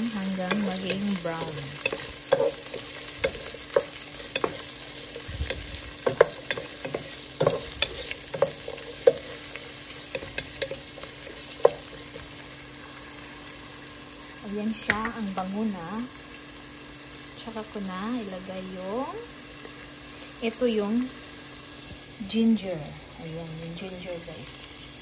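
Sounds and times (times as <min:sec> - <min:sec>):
onion sizzling in hot oil: 0:00.0 - 0:25.0
wooden spoon scraping a pot: 0:00.3 - 0:12.4.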